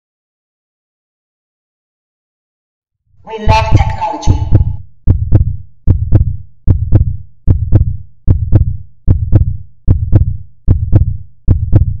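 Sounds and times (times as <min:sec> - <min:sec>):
heartbeat thumping: 0:03.4 - 0:12.0.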